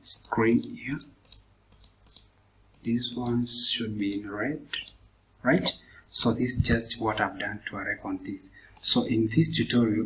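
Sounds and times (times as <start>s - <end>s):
computer mouse clicking: 0.2s - 3.4s.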